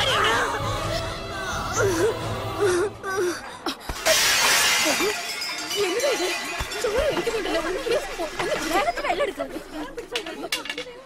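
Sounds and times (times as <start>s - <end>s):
loud shattering crash: 4.0s - 7.4s.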